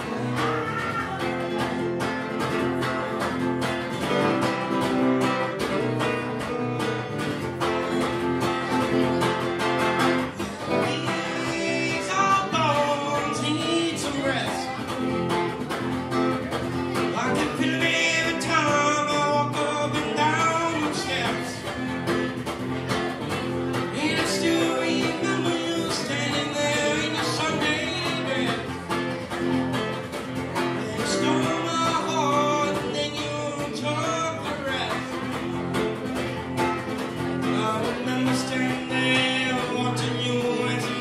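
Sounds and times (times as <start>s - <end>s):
man singing: 0.0s - 2.5s, 7.8s - 15.7s, 16.3s - 29.6s, 30.3s - 41.0s
acoustic guitar strummed: 0.0s - 41.0s.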